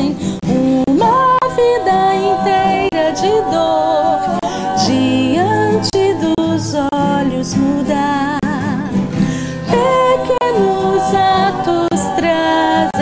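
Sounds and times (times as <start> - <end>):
person singing: 0.0 - 8.9, 9.6 - 13.0
acoustic guitar: 0.0 - 13.0.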